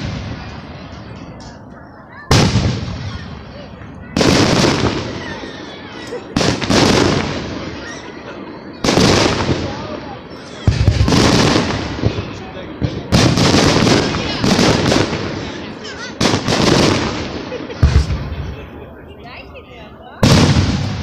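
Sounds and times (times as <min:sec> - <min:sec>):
firework shells booming: 0:02.3 - 0:08.1, 0:08.7 - 0:18.8, 0:20.2 - 0:21.0.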